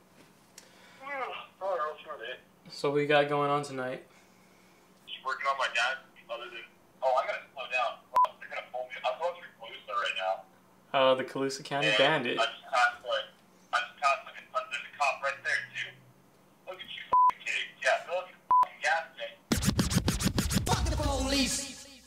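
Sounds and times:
man talking over a phone line: 5.1s - 10.4s, 11.7s - 16.0s
censor bleeps: 17.1s - 17.4s
stuttering tv logo sting: 19.5s - 22.0s.

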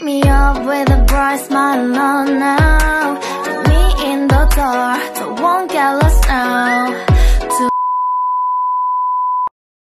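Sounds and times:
high electronic beep: 7.7s - 9.5s.

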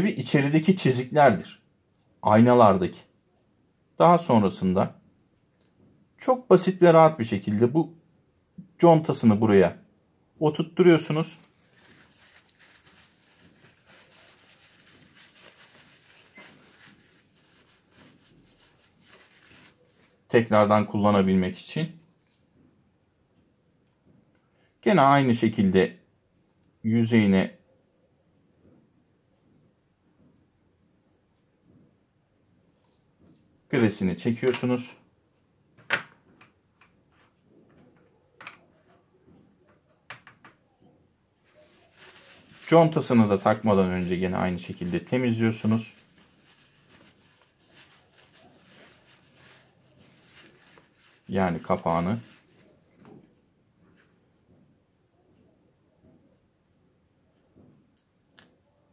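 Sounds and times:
paper towel rustling: 10.9s - 20.9s, 41.4s - 53.1s.

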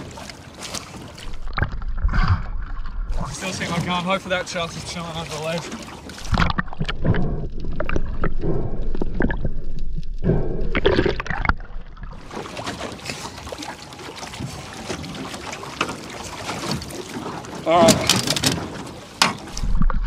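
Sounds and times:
seawater sloshing and splashing: 0.0s - 20.0s
underwater rushing and bubbling: 0.0s - 20.0s.

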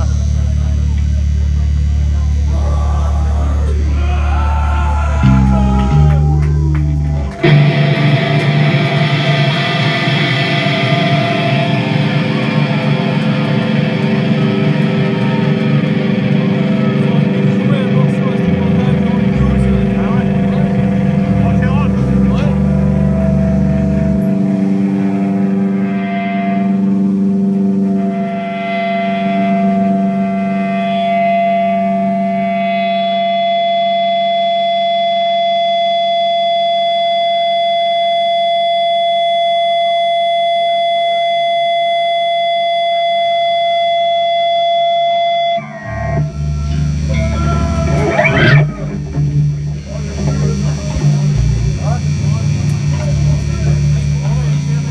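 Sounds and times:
long held guitar note: 0.0s - 34.7s, 44.5s - 54.9s
heavy metal band playing live: 2.5s - 31.4s, 45.6s - 54.9s.

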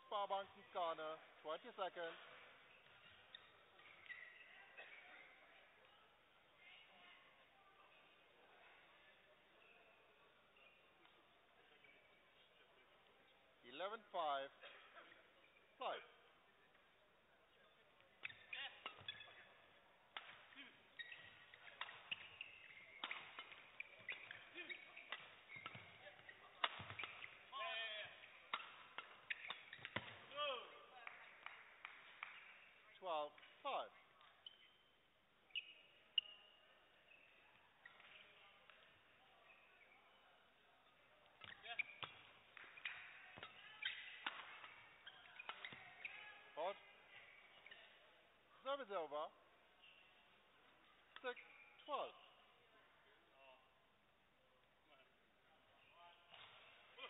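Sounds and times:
shoes squeaking on court floor: 0.0s - 5.9s, 16.6s - 52.6s, 55.7s - 57.0s
rackets hitting shuttlecock: 18.2s - 19.5s, 20.1s - 32.7s, 41.4s - 46.2s.

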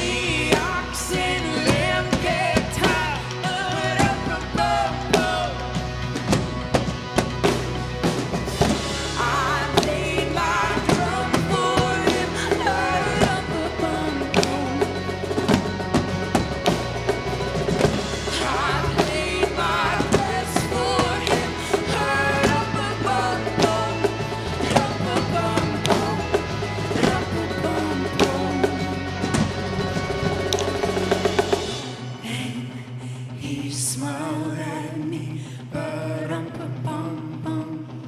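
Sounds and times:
person singing: 0.0s - 6.8s, 8.6s - 16.4s, 17.8s - 30.8s
bass drum: 0.0s - 32.3s
bass line: 0.0s - 38.0s
live band music: 0.0s - 38.0s.

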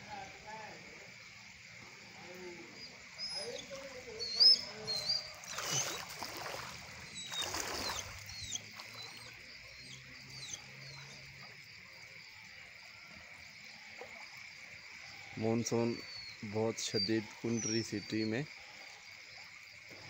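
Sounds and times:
high insect drone: 0.0s - 20.0s
birds chirping: 2.2s - 11.8s, 15.2s - 18.8s.

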